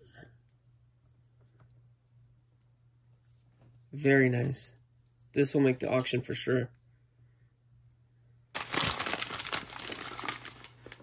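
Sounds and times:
newspaper crumpling: 8.6 - 11.0.

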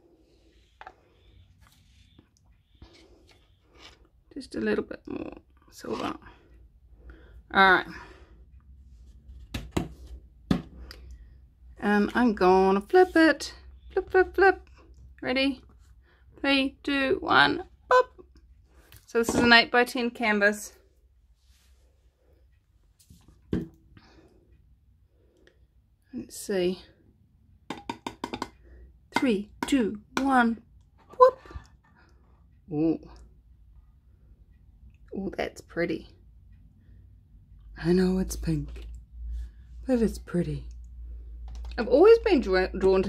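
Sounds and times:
painting supplies knocking on hard surface: 9.5 - 10.7, 27.7 - 28.6.

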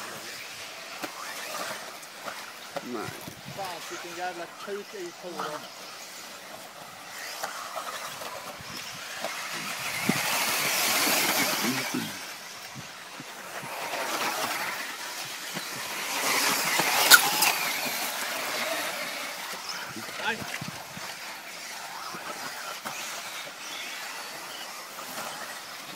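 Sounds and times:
rc car motor whine: 0.0 - 25.9.

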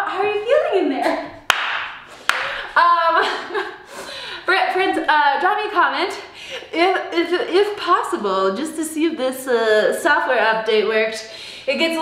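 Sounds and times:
woman speaking: 0.0 - 1.4, 2.8 - 3.6, 4.4 - 12.0
hand claps: 1.5 - 2.6.

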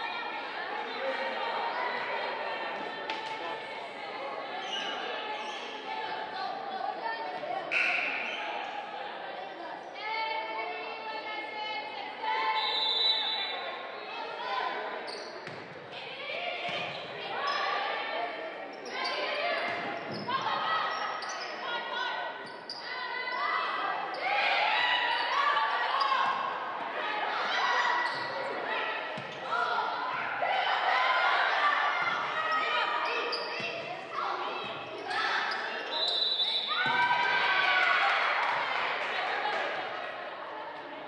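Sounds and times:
spectators' voices: 0.0 - 41.0
volleyball hits and bounces: 36.8 - 37.1.

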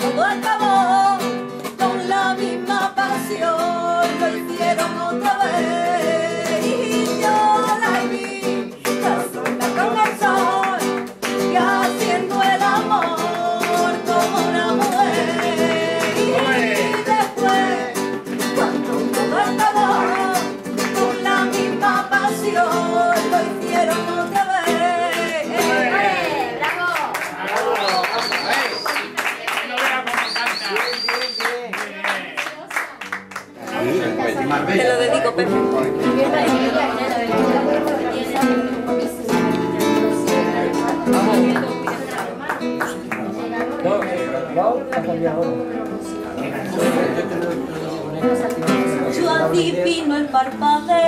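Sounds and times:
person singing: 0.0 - 26.6, 34.9 - 41.6
acoustic guitar playing: 0.0 - 27.2, 32.6 - 51.0.

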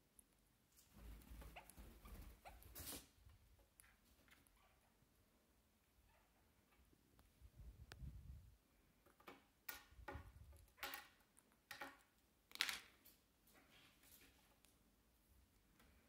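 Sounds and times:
bird beak and claws tapping wood: 9.0 - 12.9.

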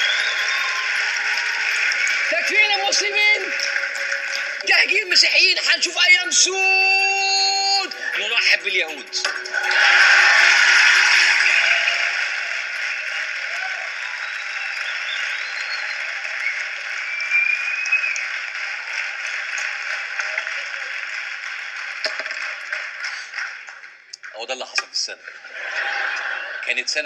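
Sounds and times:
audience applauding: 0.0 - 27.0.

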